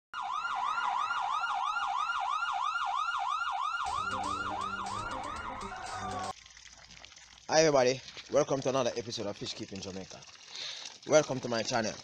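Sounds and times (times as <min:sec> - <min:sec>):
yelp siren: 0:00.2 - 0:06.3.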